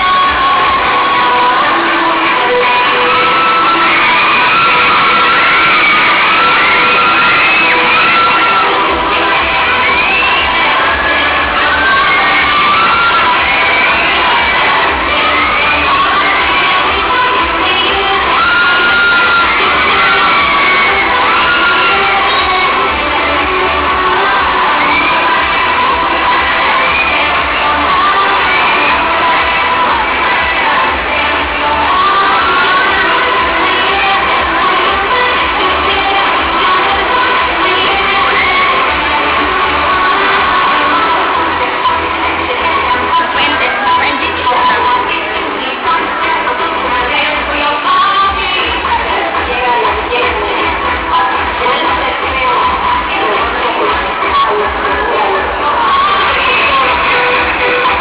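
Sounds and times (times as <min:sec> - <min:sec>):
crowd cheering and shouting: 0:00.0 - 0:58.0
loud music playing: 0:00.0 - 0:58.0.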